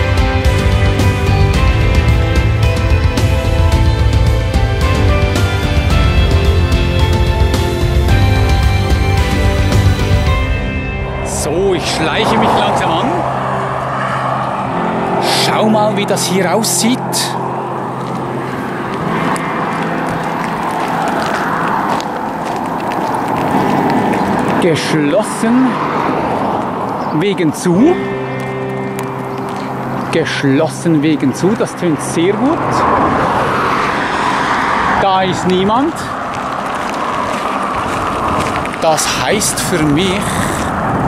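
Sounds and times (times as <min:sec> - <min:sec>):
car driving past on highway: 0:09.5 - 0:27.0, 0:32.0 - 0:41.0
tyres hissing on road: 0:32.4 - 0:41.0.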